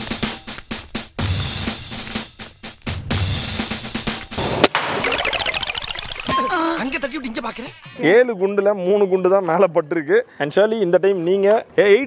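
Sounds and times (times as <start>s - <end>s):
electronic beat music: 3.1s - 8.0s
air rifle shot: 4.4s - 5.4s.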